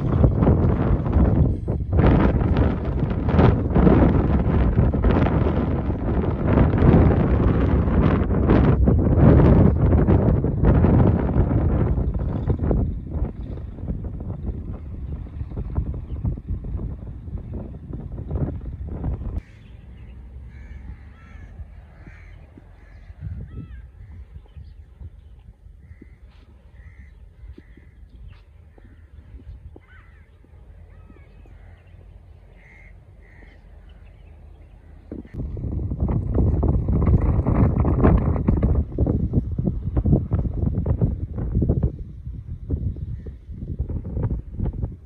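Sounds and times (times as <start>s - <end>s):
wind buffeting microphone: 0.0s - 45.0s
bird calls: 19.1s - 35.4s.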